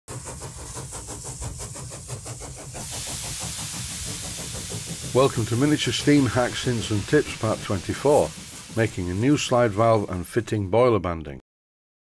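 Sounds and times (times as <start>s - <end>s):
engine running with rapid beat: 0.1s - 10.1s
loud hiss: 0.1s - 10.4s.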